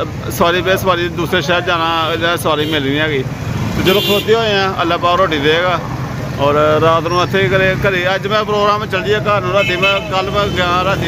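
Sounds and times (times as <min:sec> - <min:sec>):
man talking: 0:00.0 - 0:11.0
motor rickshaw running: 0:00.0 - 0:11.0.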